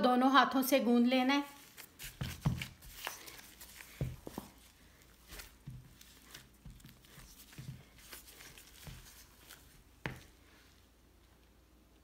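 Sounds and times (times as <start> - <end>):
dough pats and thuds: 1.6 - 10.5.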